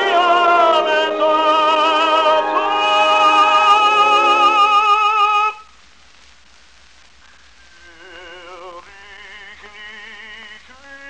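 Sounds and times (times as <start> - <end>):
orchestra held note: 0.0 - 4.9
operatic tenor singing: 0.0 - 5.6, 7.8 - 11.0
record surface hiss and hum: 0.0 - 11.0.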